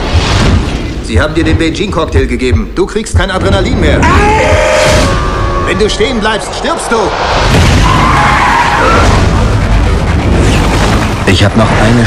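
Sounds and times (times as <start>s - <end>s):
car tyres screeching: 4.0s - 10.2s.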